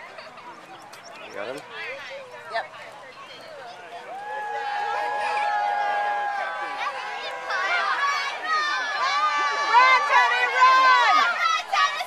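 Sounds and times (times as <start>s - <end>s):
spectators shouting encouragement: 3.5s - 12.0s.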